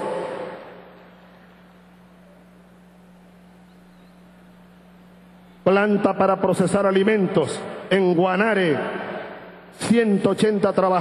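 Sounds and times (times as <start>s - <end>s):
amplified voice echo: 0.0s - 1.0s, 5.7s - 11.0s
background hiss: 0.0s - 11.0s
faint low hum: 0.0s - 11.0s.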